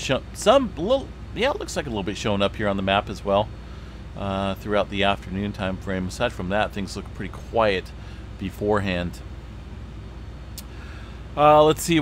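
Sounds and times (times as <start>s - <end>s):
low background rumble: 0.0s - 12.0s
faint click: 10.5s - 10.8s.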